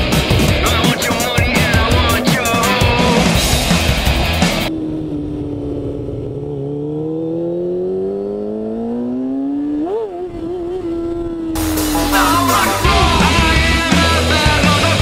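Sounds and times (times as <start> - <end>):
rock music: 0.0 - 4.7, 11.6 - 15.0
motorcycle engine accelerating: 0.0 - 15.0.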